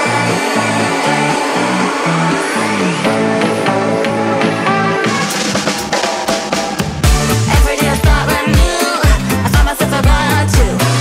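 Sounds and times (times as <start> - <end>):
rising sweep: 0.0 - 9.0
bouncing bass line: 0.0 - 11.0
electro swing music: 0.0 - 11.0.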